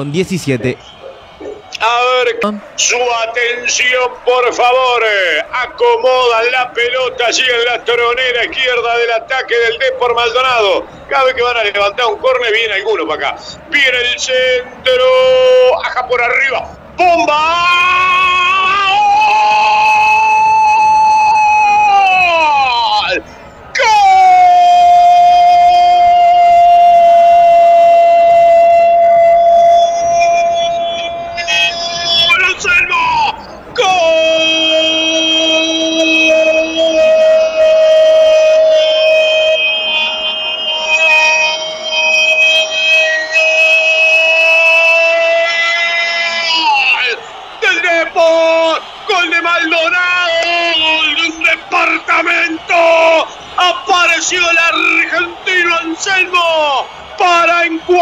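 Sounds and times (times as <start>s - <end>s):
commentator shouting: 0.0s - 0.9s, 43.5s - 58.0s.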